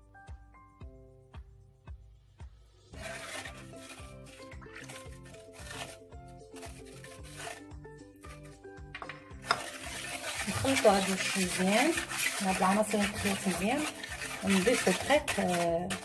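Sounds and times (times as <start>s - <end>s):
background music: 0.0s - 16.0s
batter stirred in a bowl: 2.8s - 16.0s.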